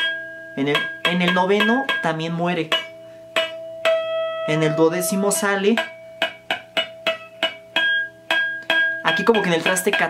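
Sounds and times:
electric guitar picked harmonics: 2.9s - 6.2s.

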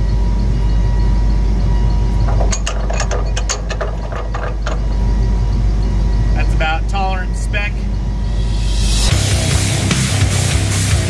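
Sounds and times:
low mechanical rumble: 0.0s - 9.9s
metallic clicks and clunks: 2.1s - 5.3s.

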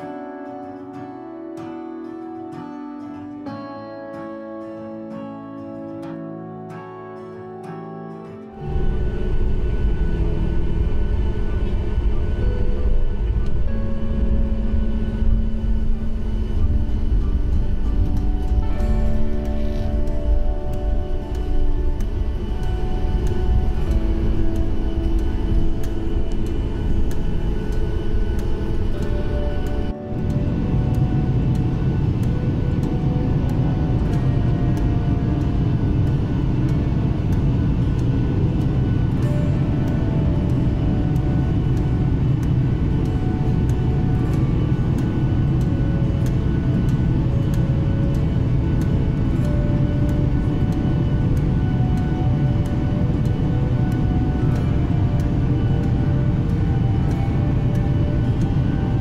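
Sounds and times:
background music with light beat: 0.0s - 59.0s
jet airliner cabin roar: 8.6s - 59.0s.

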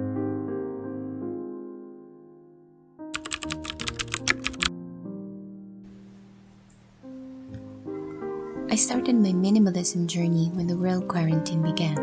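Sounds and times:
soft piano music: 0.0s - 12.0s
keyboard typing: 3.2s - 4.7s.

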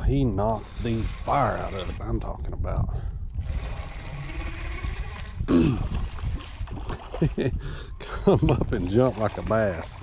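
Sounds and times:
man's wordless voice sounds: 0.0s - 3.1s, 7.2s - 10.0s
wind and water rumble: 0.0s - 10.0s.

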